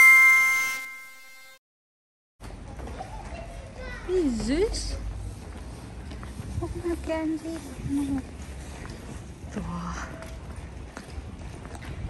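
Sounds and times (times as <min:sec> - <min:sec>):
bell-like chime: 0:00.0 - 0:01.6
low wind rumble: 0:05.0 - 0:12.0.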